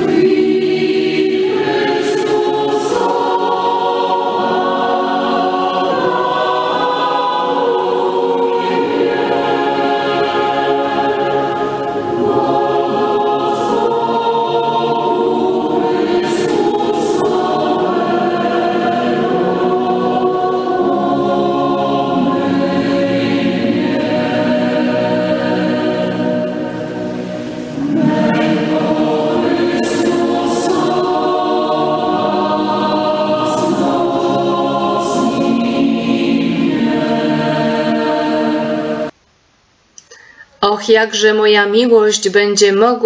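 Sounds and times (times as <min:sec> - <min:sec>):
choir singing slowly: 0:00.0 - 0:39.2.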